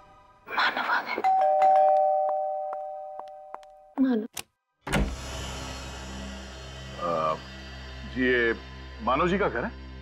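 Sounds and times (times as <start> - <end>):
two-note doorbell chime: 1.2 - 3.6.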